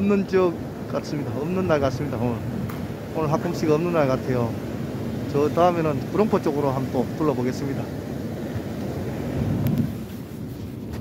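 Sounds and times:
sea surf breaking on shore: 0:00.0 - 0:11.0
wind on microphone: 0:00.0 - 0:11.0.

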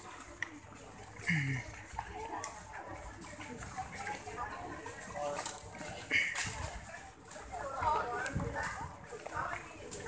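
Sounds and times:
people chatting in a crowd: 0:00.0 - 0:10.0.

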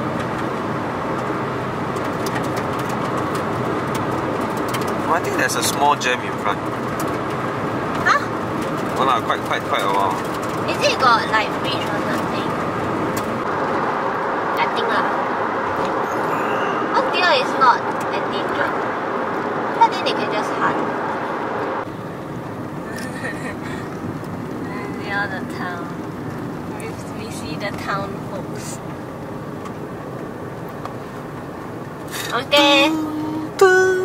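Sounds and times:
car road and engine noise: 0:00.0 - 0:34.0.

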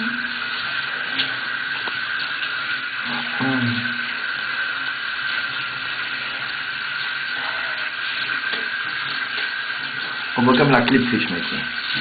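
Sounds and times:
water running from a tap: 0:00.0 - 0:12.0
short vocal sound: 0:03.1 - 0:04.0.

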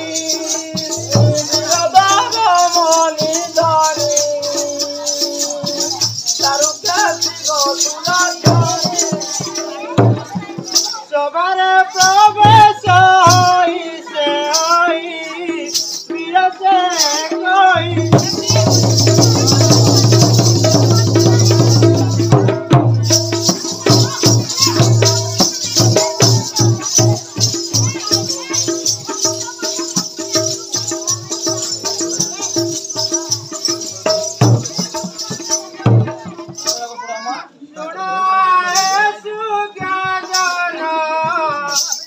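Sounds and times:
drum strokes: 0:00.0 - 0:11.0, 0:17.0 - 0:36.8
jingling percussion: 0:00.0 - 0:37.4, 0:38.6 - 0:42.0.

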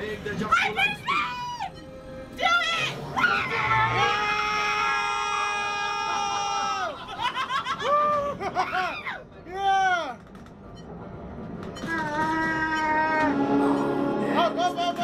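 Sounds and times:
laughter: 0:06.9 - 0:09.2.

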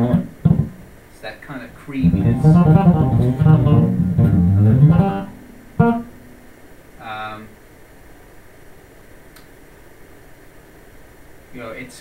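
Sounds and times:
electric bass playing notes: 0:00.0 - 0:00.9, 0:02.0 - 0:06.5.

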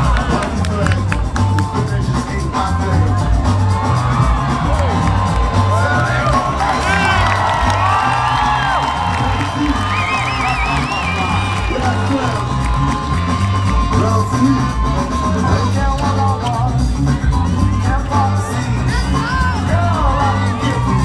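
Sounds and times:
crowd cheering and whooping: 0:00.0 - 0:21.0
loud music with heavy bass beat: 0:00.0 - 0:21.0.

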